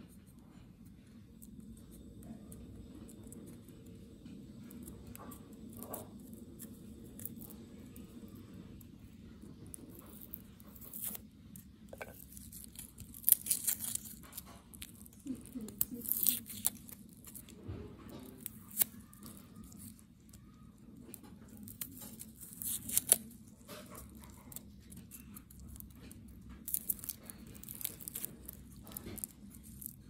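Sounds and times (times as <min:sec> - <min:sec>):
garlic skin crackling and tearing: 0:02.8 - 0:17.6, 0:18.2 - 0:30.0.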